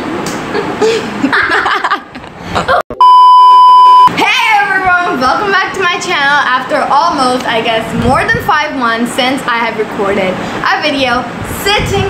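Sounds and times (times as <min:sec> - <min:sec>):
censor bleep tone: 0:03.0 - 0:04.1.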